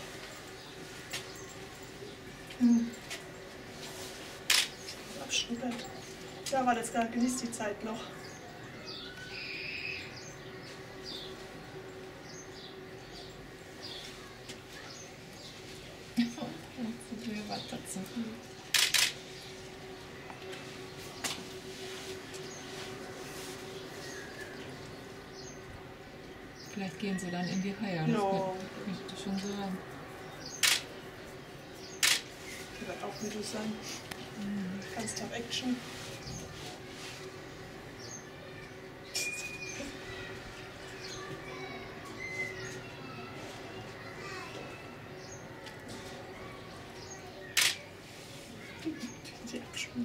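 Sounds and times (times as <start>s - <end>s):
faint background murmur: 0.0s - 50.0s
faint high chirps: 8.4s - 10.4s, 41.1s - 43.3s.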